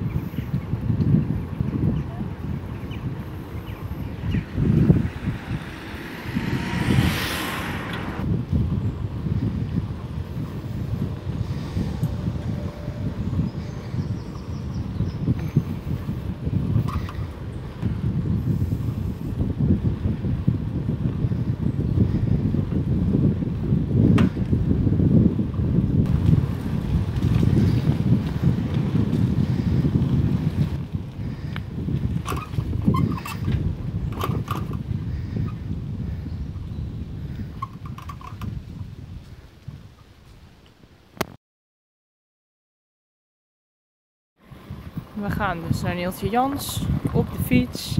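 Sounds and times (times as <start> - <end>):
wind buffeting microphone: 0.0 - 41.3, 44.4 - 47.9.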